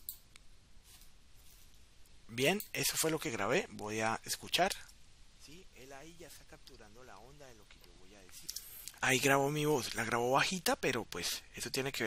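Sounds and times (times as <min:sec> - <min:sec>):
light room hiss: 0:00.0 - 0:12.0.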